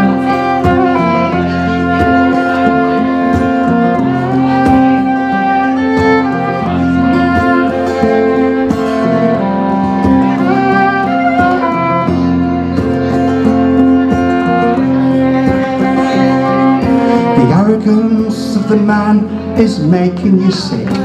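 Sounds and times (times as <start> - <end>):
acoustic guitars strumming: 0.0 - 21.0
fiddle melody: 0.0 - 21.0.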